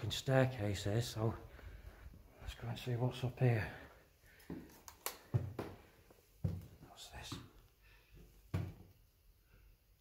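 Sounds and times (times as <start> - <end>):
footsteps on wooden staircase: 4.4 - 7.5, 8.2 - 9.0.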